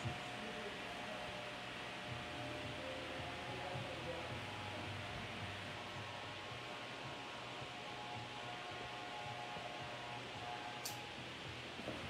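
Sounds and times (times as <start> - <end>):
electric hair clipper humming: 8.0 - 11.9.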